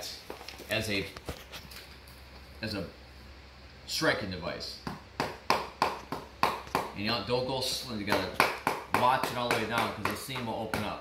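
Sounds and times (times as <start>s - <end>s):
hammer tapping on vinyl plank: 4.8s - 7.0s, 8.1s - 11.0s.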